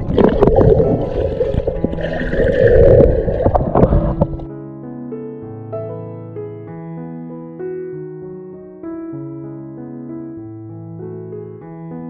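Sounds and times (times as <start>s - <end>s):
rushing crackling underwater noise: 0.0s - 4.5s
soft keyboard music: 0.0s - 12.0s.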